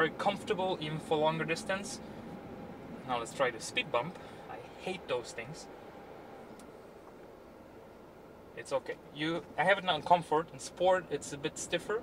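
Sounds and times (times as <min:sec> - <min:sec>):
car cabin road and engine noise: 0:00.0 - 0:12.0.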